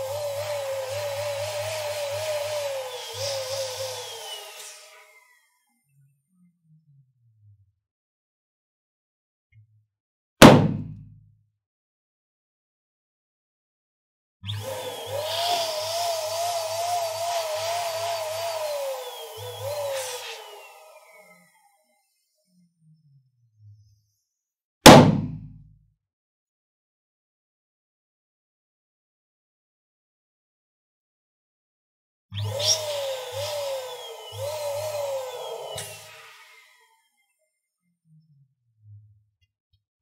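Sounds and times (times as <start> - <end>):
electric balloon pump humming: 0.0 - 5.6, 14.5 - 22.4, 32.4 - 37.0.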